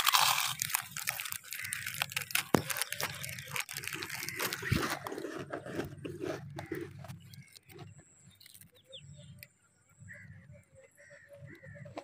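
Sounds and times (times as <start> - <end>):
chips being bitten and chewed: 0.0 - 8.8.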